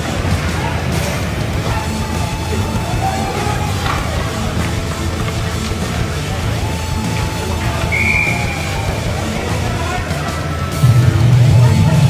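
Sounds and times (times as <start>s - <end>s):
music over sound system: 0.0s - 12.0s
referee whistle blast: 1.7s - 5.1s, 6.1s - 9.3s.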